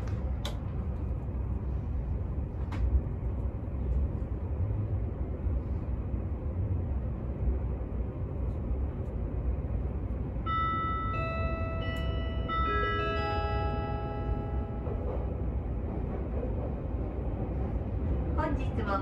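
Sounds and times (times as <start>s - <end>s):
train rumbling in tunnel: 0.0s - 19.0s
bell-like chime melody: 10.5s - 14.9s.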